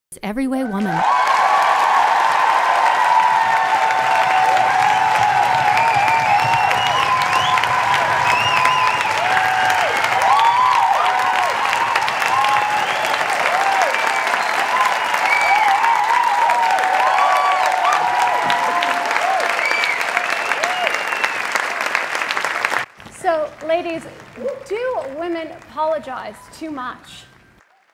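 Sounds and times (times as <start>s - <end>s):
people whooping and cheering: 0.7s - 22.8s
audience applauding: 0.8s - 25.9s.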